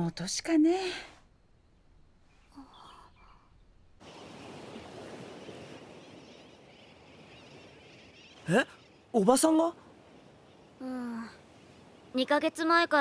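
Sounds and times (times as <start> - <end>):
faint chirping: 0.1 - 13.0
surf washing: 4.0 - 13.0.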